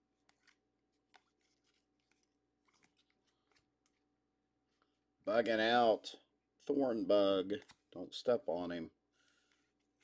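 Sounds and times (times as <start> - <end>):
trading cards flipped by hand: 0.2 - 4.1.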